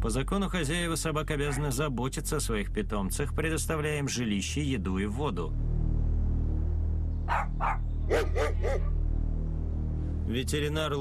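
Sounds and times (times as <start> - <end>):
dog barking: 1.5 - 1.8, 7.3 - 8.9.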